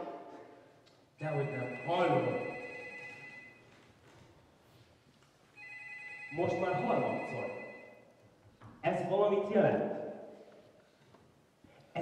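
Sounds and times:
telephone ringing: 0:01.2 - 0:03.9, 0:05.6 - 0:08.1.

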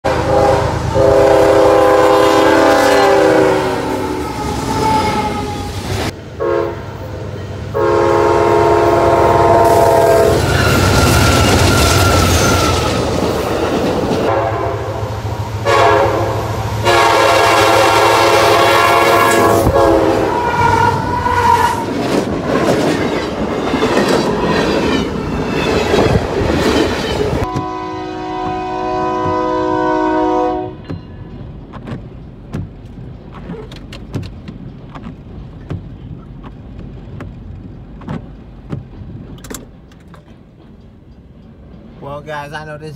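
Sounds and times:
locomotive air horn: 0:00.0 - 0:05.8, 0:06.4 - 0:07.0, 0:07.7 - 0:13.0, 0:14.2 - 0:21.9, 0:27.4 - 0:30.9
locomotive engine rumble: 0:00.1 - 0:42.9
wheels clattering on rail: 0:20.9 - 0:42.1.

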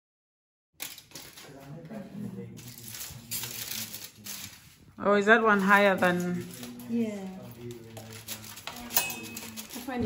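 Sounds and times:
aluminium foil crinkling: 0:00.8 - 0:10.0
quiet talk: 0:01.3 - 0:04.6, 0:06.0 - 0:10.0.

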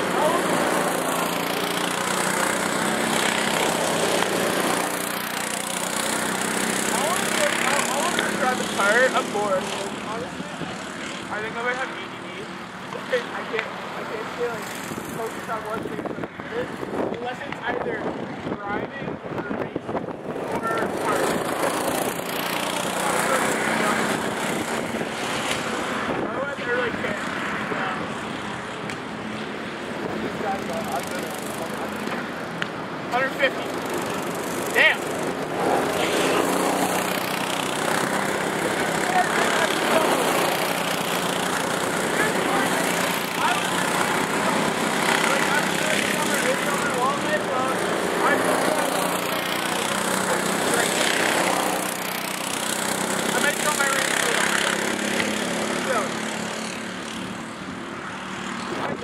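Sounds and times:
go-kart driving past: 0:00.0 - 0:15.8, 0:20.2 - 0:59.0
indistinct voices talking: 0:00.0 - 0:28.8, 0:29.9 - 0:57.1
go-kart engines buzzing: 0:00.0 - 0:59.0.

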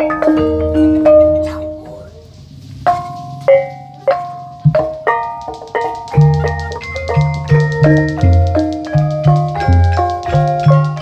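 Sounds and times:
kettle gongs struck with mallets: 0:02.8 - 0:11.0.

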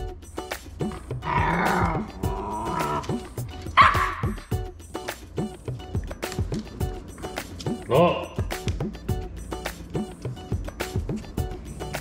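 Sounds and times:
background music with steady beat: 0:00.0 - 0:12.0
puppy whining and yipping: 0:01.2 - 0:04.6.

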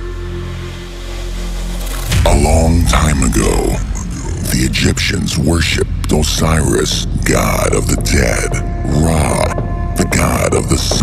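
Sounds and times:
low synth drone: 0:00.0 - 0:11.0.

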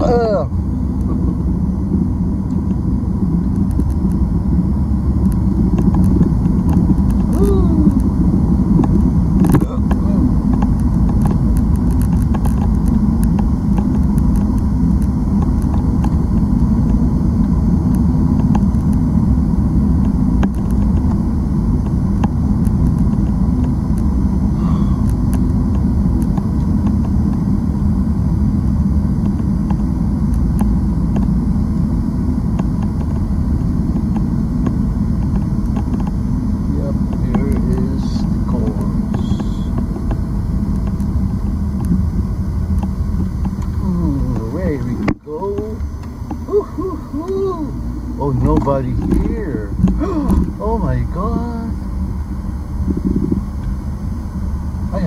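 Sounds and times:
car road and engine noise: 0:00.0 - 0:55.0.

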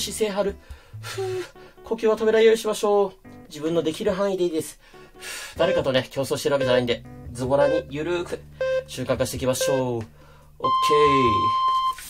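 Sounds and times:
electronic timer beep: 0:05.6 - 0:06.9, 0:07.6 - 0:10.0, 0:10.6 - 0:12.0.

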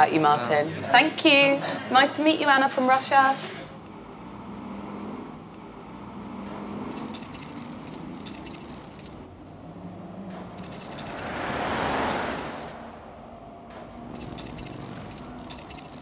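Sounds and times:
city street traffic: 0:00.0 - 0:16.0
vehicle passing: 0:00.0 - 0:16.0
light metallic jingling: 0:10.6 - 0:12.8.

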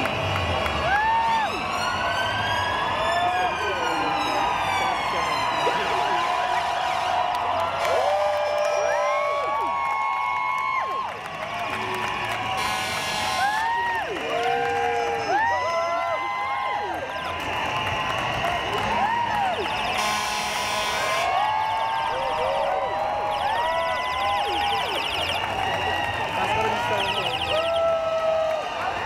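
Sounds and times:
crowd: 0:00.0 - 0:29.0
emergency sirens: 0:00.0 - 0:29.0.

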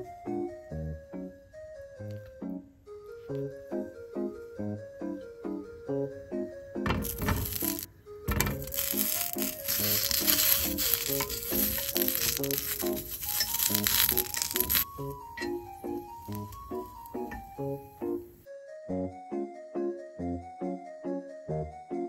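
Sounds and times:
light tune with keyboard beat: 0:00.0 - 0:22.0
sausages sizzling in a frying pan: 0:07.0 - 0:18.4.

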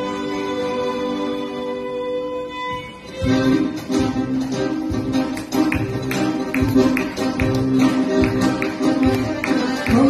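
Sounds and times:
accordion chords: 0:00.0 - 0:10.0
violin: 0:00.0 - 0:10.0.

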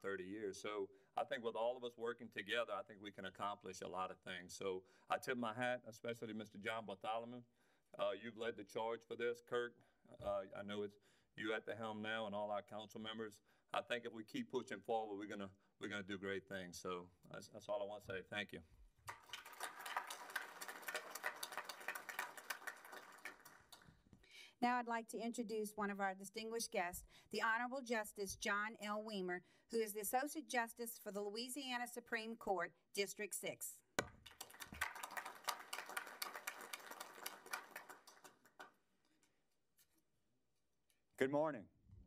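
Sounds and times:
audience applauding: 0:19.1 - 0:23.9, 0:34.2 - 0:38.7.

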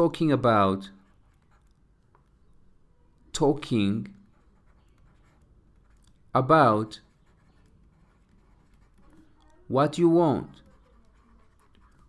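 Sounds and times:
stylus scratching on tablet: 0:00.0 - 0:02.5, 0:03.4 - 0:12.0.

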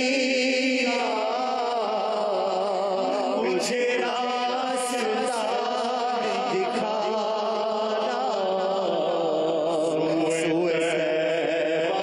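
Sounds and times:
man chanting with vibrato: 0:00.0 - 0:12.0.

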